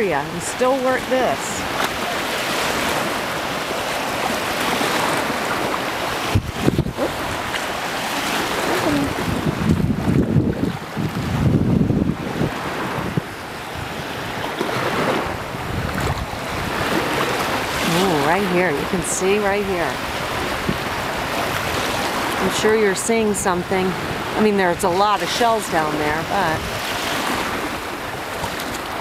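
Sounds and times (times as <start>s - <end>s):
small waves washing: 0.0s - 29.0s
wind rumbling on microphone: 0.0s - 29.0s.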